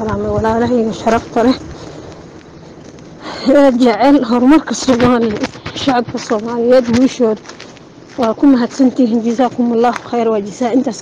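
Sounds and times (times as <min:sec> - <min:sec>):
woman speaking into a microphone: 0:00.0 - 0:01.6, 0:03.2 - 0:07.5, 0:08.2 - 0:11.0
outdoor background noise: 0:00.0 - 0:11.0.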